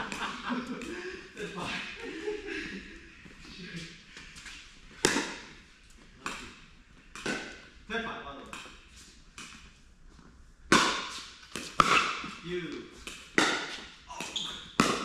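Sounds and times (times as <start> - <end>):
pickleball hitting paddles: 5.0 - 5.5, 6.2 - 7.7, 10.7 - 15.0.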